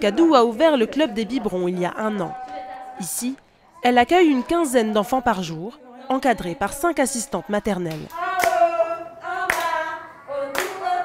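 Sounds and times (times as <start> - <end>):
people singing: 0.0 - 11.0
hand claps: 7.9 - 8.6, 9.5 - 9.8, 10.5 - 10.8.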